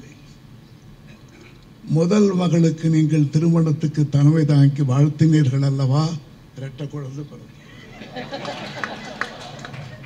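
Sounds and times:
man's amplified voice: 1.9 - 7.5
audience laughing: 7.8 - 10.0.

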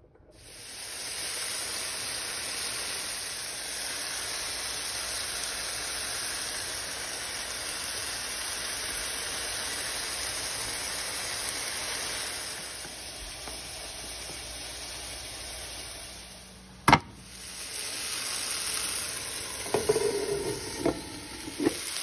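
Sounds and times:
chicken sizzling in a pan: 0.4 - 22.0.

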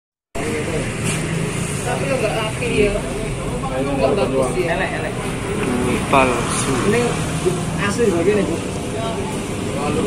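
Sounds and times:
indistinct voices talking: 0.4 - 10.0
steady background noise: 0.4 - 10.0.

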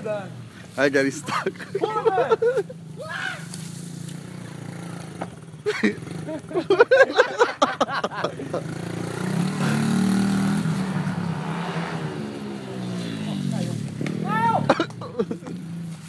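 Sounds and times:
pit bike engine revving: 0.0 - 16.0
high-pitched shout: 3.0 - 3.5, 14.2 - 14.7
person shouting: 3.0 - 3.5, 14.2 - 14.8.

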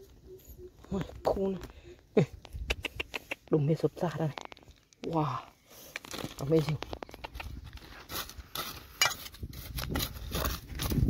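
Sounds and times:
trowel scraping through dry soil: 5.7 - 11.0.

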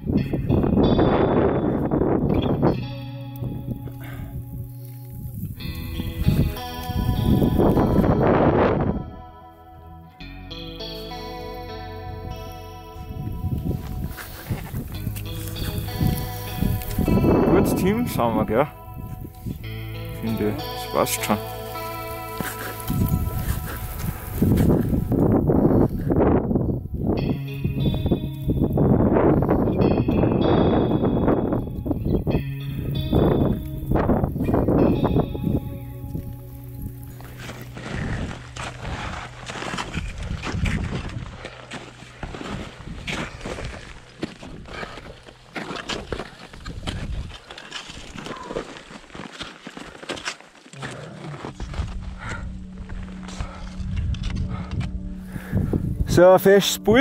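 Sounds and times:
music with low notes: 0.0 - 47.2, 50.8 - 57.0
crampon steps in snow: 37.3 - 52.1.

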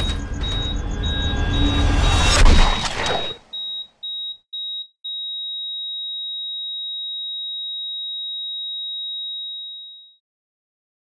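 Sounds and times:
high electronic beeps and tone: 0.0 - 4.3.

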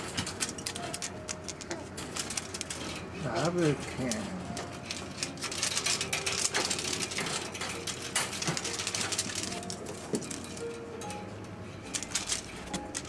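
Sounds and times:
crackly rustling of toy streamers: 0.0 - 13.0
soft background music: 0.0 - 13.0.

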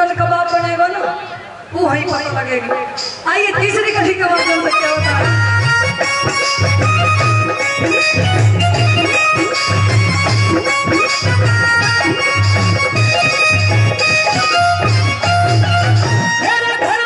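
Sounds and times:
harmonium melody: 0.0 - 17.0
steady low drum beat: 4.8 - 16.4.

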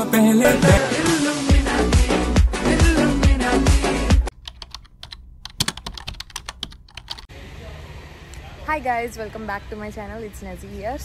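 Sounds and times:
dance music: 0.0 - 4.3.

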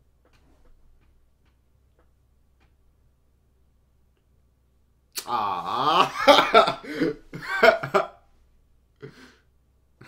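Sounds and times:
man laughing: 5.2 - 8.2.

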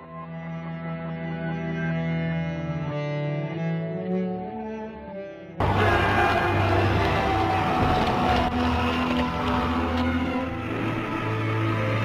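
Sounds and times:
dark sustained music: 0.0 - 12.0.

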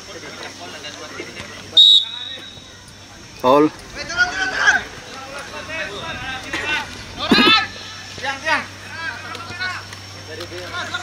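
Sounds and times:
people shouting calls: 1.7 - 2.9, 4.0 - 9.8.

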